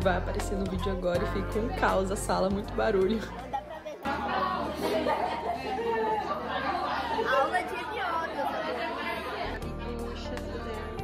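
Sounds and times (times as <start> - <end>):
background music: 0.0 - 5.1, 9.1 - 11.0
many voices talking: 0.0 - 11.0.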